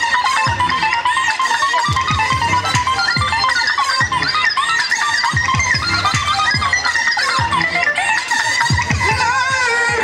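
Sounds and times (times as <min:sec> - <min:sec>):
keyboard melody: 0:00.0 - 0:10.0.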